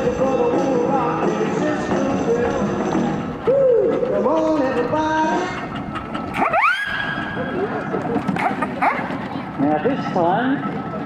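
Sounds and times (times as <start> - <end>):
rock and roll music with singing: 0.0 - 5.6.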